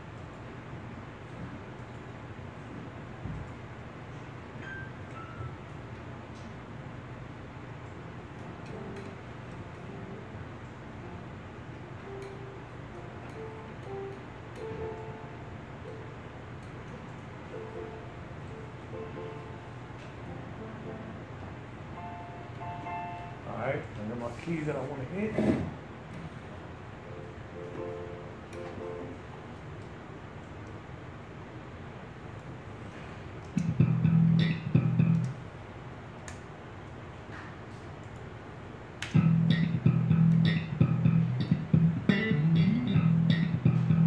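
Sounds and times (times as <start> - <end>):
piano single notes: 8.4 - 23.6, 33.6 - 35.4, 39.1 - 44.0.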